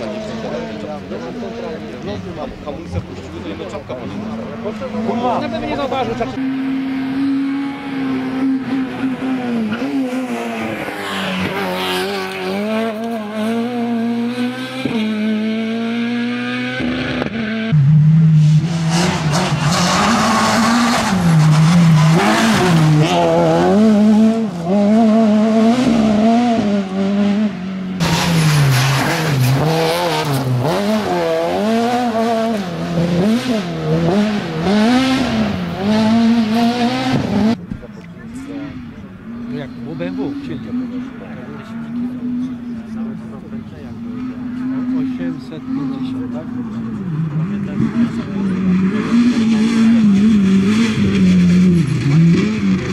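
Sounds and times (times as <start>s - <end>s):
rally car engine revving hard: 3.1s - 37.7s, 38.4s - 52.9s.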